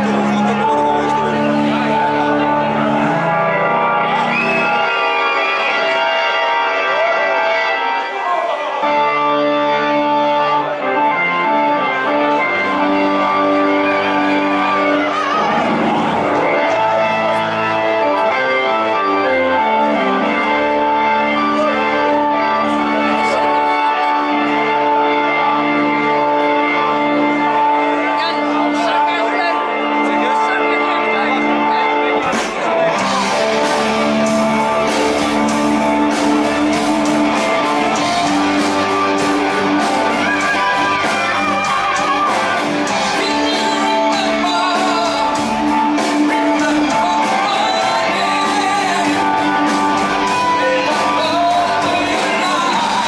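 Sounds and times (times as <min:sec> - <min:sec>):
bass guitar: 0:00.0 - 0:08.0, 0:08.6 - 0:53.0
organ chords: 0:00.0 - 0:53.0.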